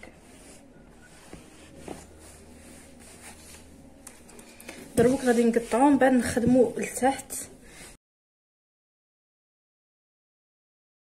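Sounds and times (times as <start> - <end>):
cloth rustling: 0.0 - 7.0
low steady hum: 0.0 - 8.0.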